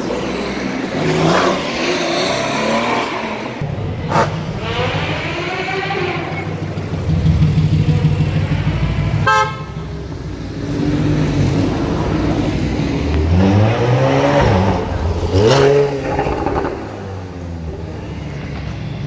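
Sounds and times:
sports cars driving past: 0:00.0 - 0:19.0
car horn toot: 0:09.2 - 0:09.8.

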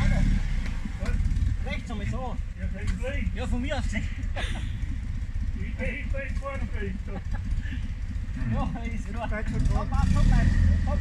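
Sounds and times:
off-road vehicle engine running low: 0:00.0 - 0:11.0
voices talking: 0:00.0 - 0:11.0.

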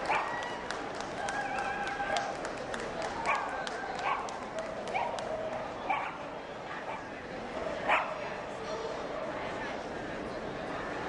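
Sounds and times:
dog barking: 0:03.3 - 0:04.3, 0:05.9 - 0:06.2, 0:07.8 - 0:08.2.

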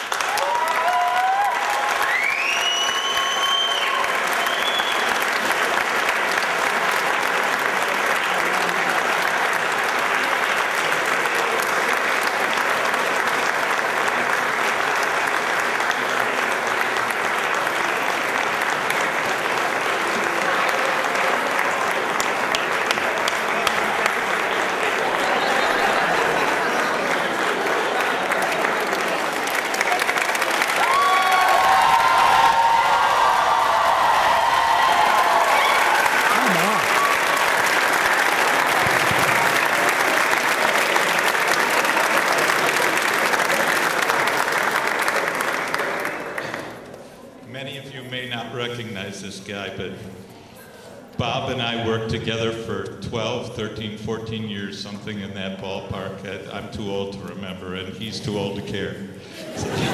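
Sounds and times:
audience applauding: 0:00.0 - 0:47.3.

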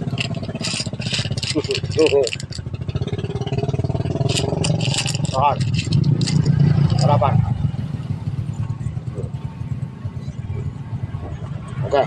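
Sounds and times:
engine low rumble: 0:00.0 - 0:12.0.

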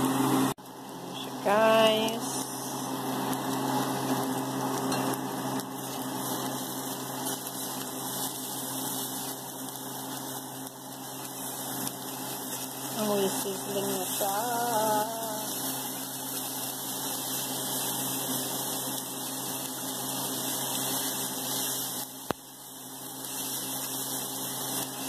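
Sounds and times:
meat sizzling on a hot plate: 0:00.1 - 0:25.0
spatula turning meat: 0:01.4 - 0:25.0.

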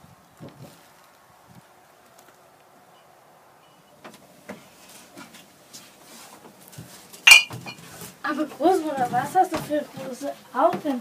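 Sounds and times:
rustling and handling noise: 0:04.0 - 0:11.0
sharp ringing clink: 0:07.3 - 0:07.5.

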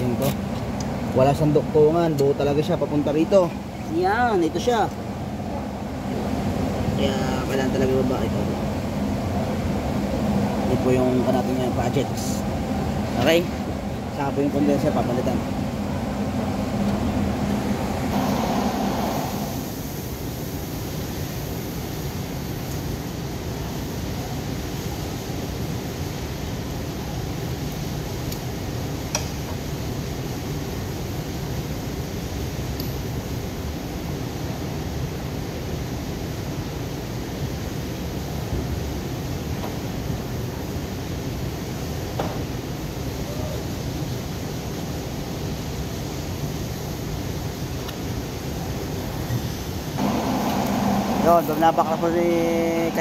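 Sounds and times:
car service bay background hum: 0:00.0 - 0:53.0.

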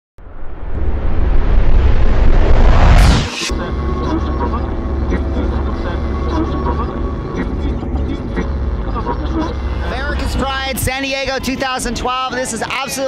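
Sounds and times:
low street rumble: 0:00.2 - 0:13.0.

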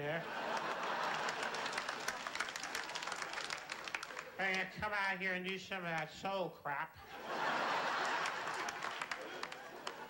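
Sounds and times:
audience applauding: 0:00.4 - 0:04.6, 0:07.6 - 0:10.0.

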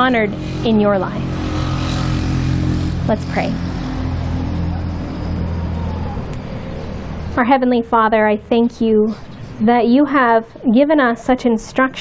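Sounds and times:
low mechanical rumble: 0:00.0 - 0:09.4
constant hum: 0:00.0 - 0:12.0.

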